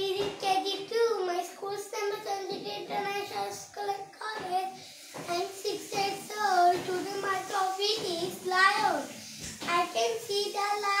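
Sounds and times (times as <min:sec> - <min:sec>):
boy reciting sing-song: 0:00.0 - 0:11.0.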